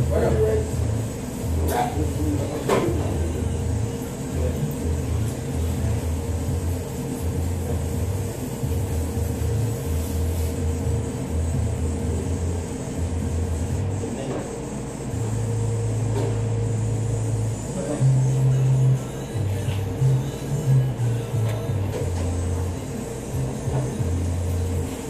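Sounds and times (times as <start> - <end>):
steady hum: 0.0 - 25.0.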